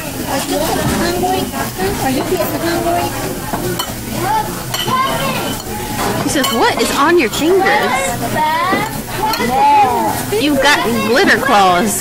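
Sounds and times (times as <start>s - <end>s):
indistinct diners' voices: 0.0s - 12.0s
restaurant room din: 0.0s - 12.0s.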